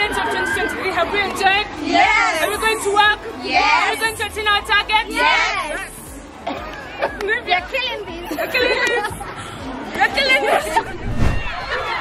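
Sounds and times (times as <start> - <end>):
girls chattering: 0.0 - 10.9.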